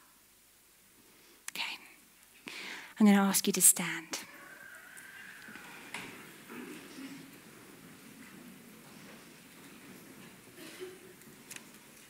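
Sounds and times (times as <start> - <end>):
woman inhaling breath: 2.4 - 3.0.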